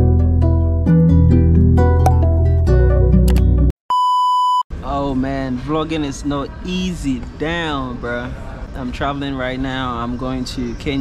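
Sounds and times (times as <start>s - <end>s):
plucked-string intro music: 0.0s - 3.7s
electronic beep tone: 3.9s - 4.6s.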